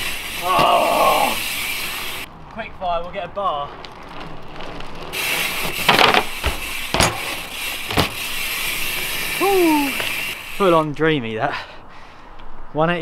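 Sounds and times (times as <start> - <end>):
person shouting: 0.4 - 1.4, 9.4 - 10.0
bike knocking on ramp and tarmac: 2.9 - 8.3
bike freewheel hub ticking: 3.8 - 10.8.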